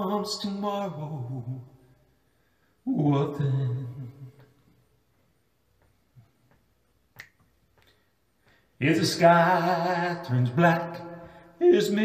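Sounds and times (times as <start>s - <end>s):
man singing unaccompanied: 0.0s - 1.8s, 2.9s - 4.5s, 8.8s - 12.0s.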